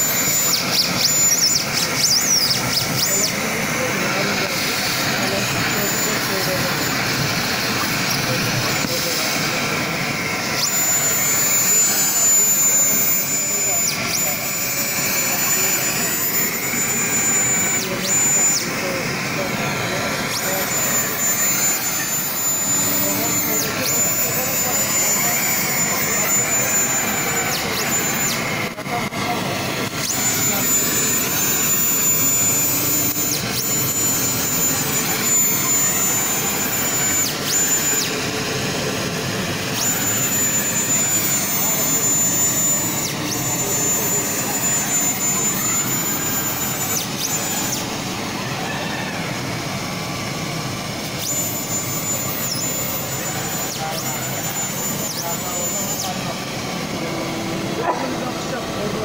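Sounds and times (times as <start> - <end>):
blower air rushing: 0.0 - 59.0
thin high whine: 0.0 - 59.0.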